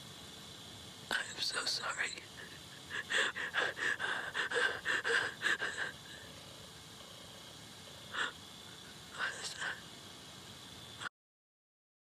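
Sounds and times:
woman's shaky gasping breaths: 2.9 - 6.2.

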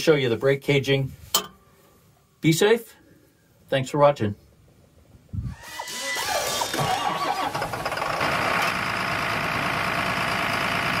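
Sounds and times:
engine cranking and starting: 5.6 - 11.0.

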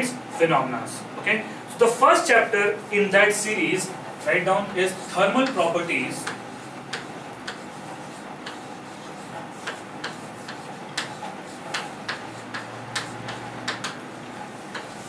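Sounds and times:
chalk tapping on chalkboard: 5.0 - 15.0.

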